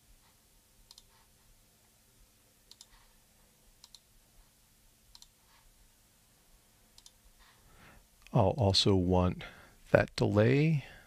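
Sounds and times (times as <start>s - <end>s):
computer mouse clicks: 0.9s - 1.2s, 2.7s - 3.1s, 3.8s - 4.1s, 5.1s - 5.4s, 7.0s - 7.2s.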